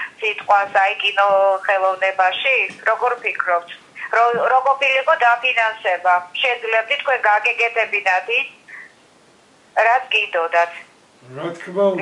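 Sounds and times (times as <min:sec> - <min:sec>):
man talking: 0:11.2 - 0:12.0.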